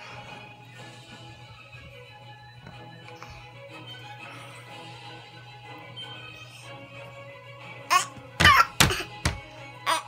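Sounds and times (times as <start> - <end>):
background music: 0.0 - 10.0
loud coughing: 7.9 - 9.2.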